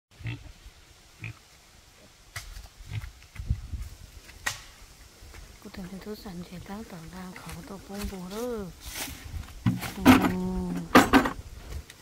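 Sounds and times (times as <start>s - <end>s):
person speaking: 5.6s - 8.8s, 9.8s - 11.1s
footsteps in dry leaves: 6.6s - 10.0s.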